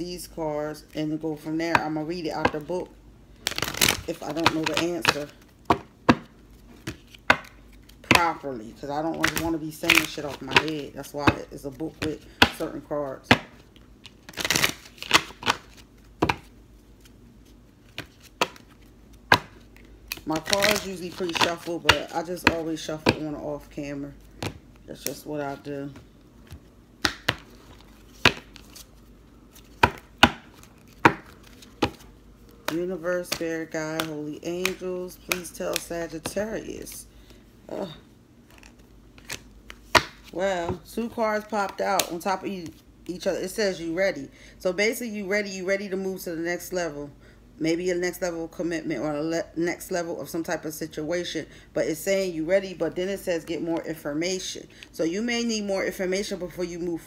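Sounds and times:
cards being shuffled: 3.3s - 23.4s, 24.1s - 40.8s.

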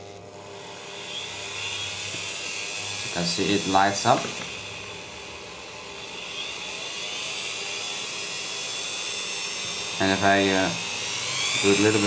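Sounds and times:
rotary tool whining: 0.0s - 12.0s.

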